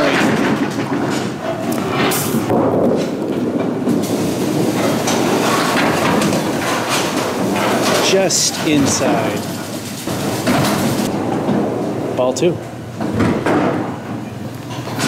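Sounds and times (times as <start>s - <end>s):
bowling ball rolling on wooden lane: 0.0s - 15.0s.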